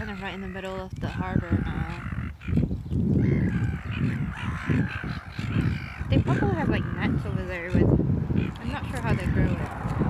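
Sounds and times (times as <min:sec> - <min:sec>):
gulls calling harshly: 0:00.0 - 0:10.0
wind rumble on microphone: 0:00.0 - 0:10.0.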